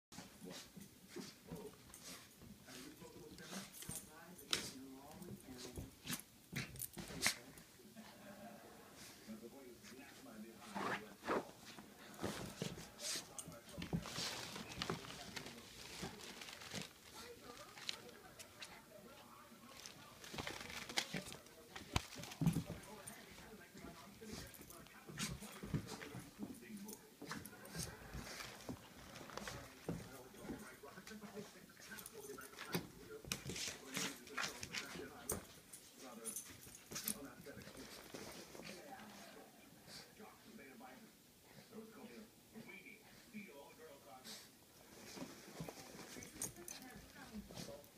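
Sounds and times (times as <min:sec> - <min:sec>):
rustling of plush toy: 0:10.6 - 0:18.8, 0:19.6 - 0:26.4, 0:27.2 - 0:30.8, 0:44.8 - 0:47.8.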